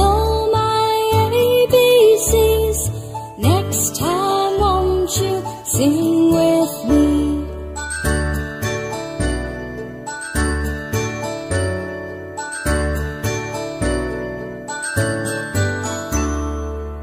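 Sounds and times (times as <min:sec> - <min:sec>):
chiming bell-like notes: 0:06.8 - 0:17.0.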